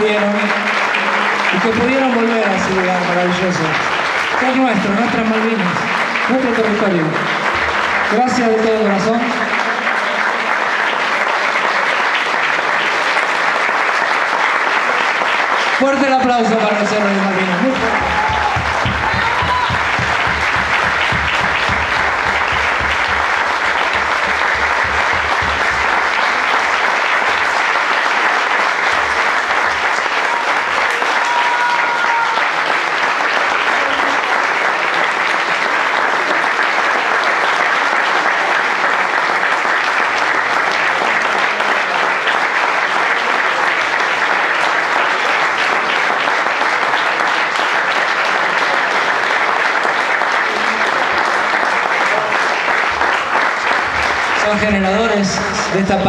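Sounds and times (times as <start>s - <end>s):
crowd applauding: 0.0s - 56.0s.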